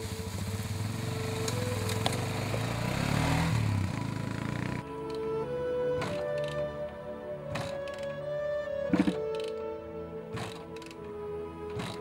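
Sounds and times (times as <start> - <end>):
quad engine puttering: 0.0 - 5.4, 6.0 - 6.8, 8.9 - 9.6, 10.3 - 11.0, 11.7 - 12.0.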